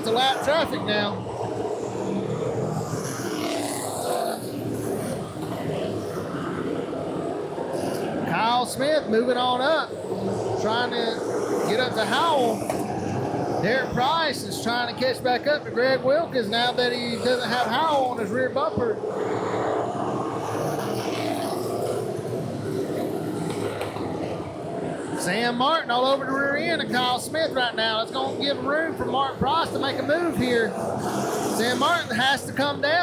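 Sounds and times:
race car engines passing: 0.0 - 33.0.

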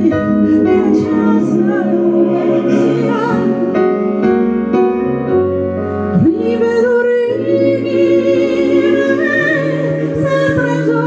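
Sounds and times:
piano and keyboard accompaniment: 0.0 - 11.0
woman singing into a microphone: 6.1 - 11.0.

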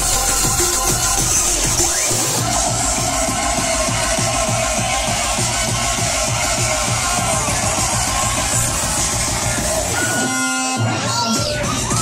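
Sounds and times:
dubstep over club sound system: 0.0 - 12.0
repeating bass beat: 0.0 - 12.0.

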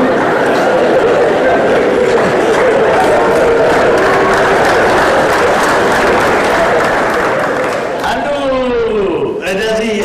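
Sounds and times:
audience laughing: 0.0 - 7.9
audience applauding: 0.0 - 8.5.

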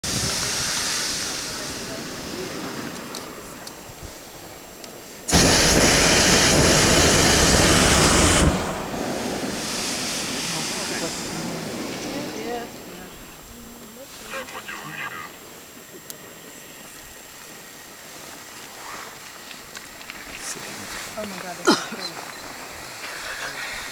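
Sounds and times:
propane burner blast: 0.0 - 13.6
steady faint hiss: 0.0 - 23.9.

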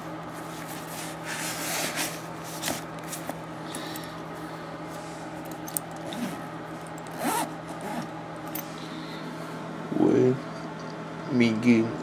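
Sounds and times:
bag zipper pulled: 6.0 - 8.1.

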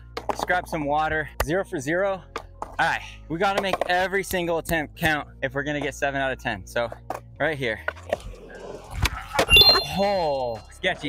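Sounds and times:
skateboard wheels rolling on concrete: 0.0 - 1.1, 2.2 - 9.6.

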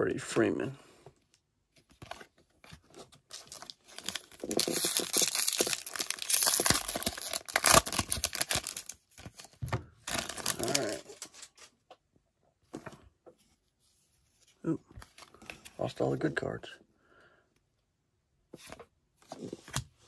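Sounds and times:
foil wrapper tearing and crinkling: 3.3 - 9.5, 10.1 - 11.6.

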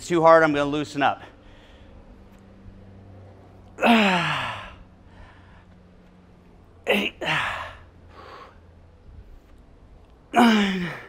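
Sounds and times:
man groaning on exhale: 3.8 - 4.9, 6.9 - 7.9, 10.3 - 11.0.

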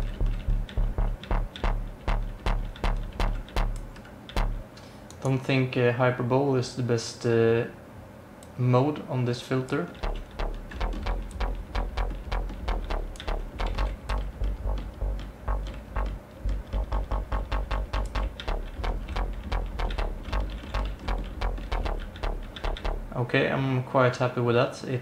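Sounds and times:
gritty synth bass notes: 0.0 - 4.7, 9.7 - 23.3.

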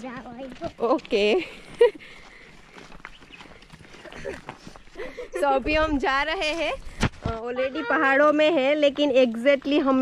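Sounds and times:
footsteps on dirt trail: 0.0 - 10.0.

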